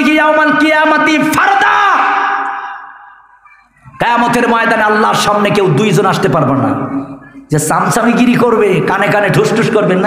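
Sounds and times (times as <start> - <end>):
man shouting through loudspeaker: 0.0 - 2.9, 3.9 - 10.0.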